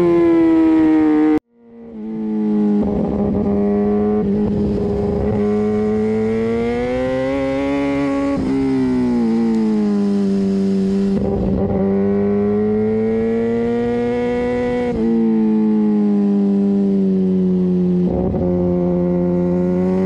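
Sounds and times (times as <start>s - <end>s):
motorcycle engine running: 1.2s - 20.0s.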